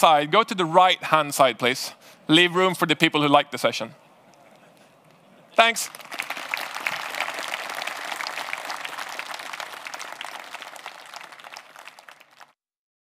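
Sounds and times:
audience applauding: 5.6s - 12.6s.

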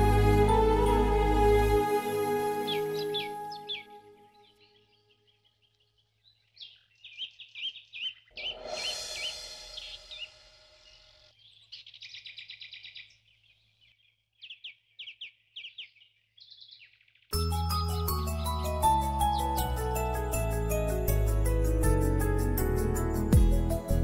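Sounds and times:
small birds chirping: 2.5s - 20.9s
music with chiming mallets: 17.4s - 24.0s.

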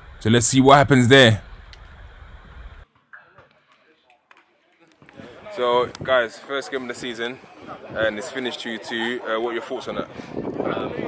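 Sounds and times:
low outdoor rumble: 0.0s - 2.8s
faint voices: 2.2s - 11.0s.

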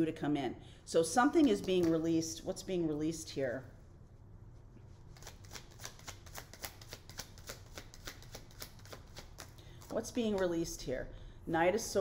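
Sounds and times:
cards being shuffled: 5.1s - 10.5s.

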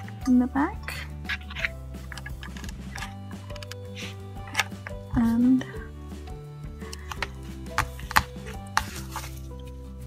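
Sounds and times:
soft background music: 0.0s - 10.0s
hands tapping on craft: 6.9s - 9.2s.

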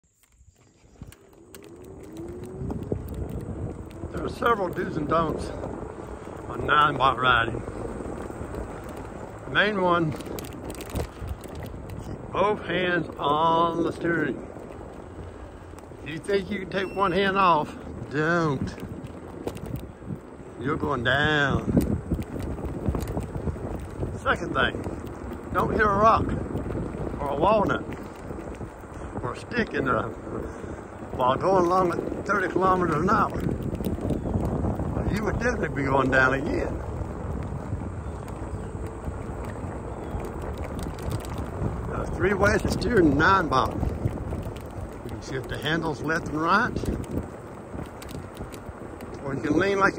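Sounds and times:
tyre rumble on asphalt: 0.0s - 49.9s
wind noise on microphone: 0.0s - 49.9s.

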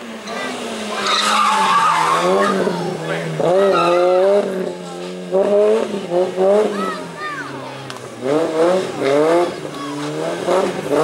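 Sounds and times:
race car engine accelerating: 0.0s - 11.0s.

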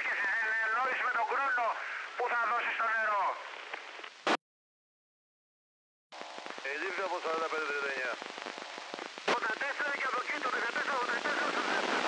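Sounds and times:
voice over two-way radio: 0.0s - 3.4s, 6.6s - 8.2s, 9.3s - 12.0s.

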